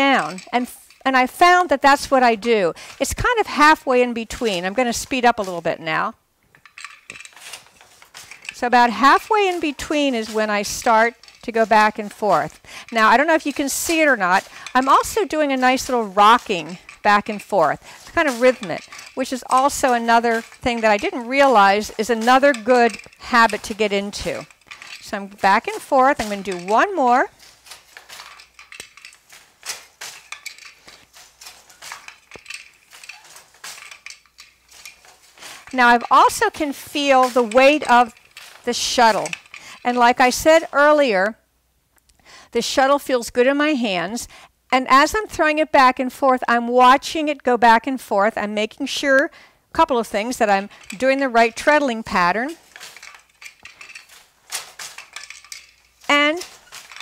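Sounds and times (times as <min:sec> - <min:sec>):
wooden loom knocking and clacking: 0:00.0 - 0:41.2, 0:49.8 - 0:57.0.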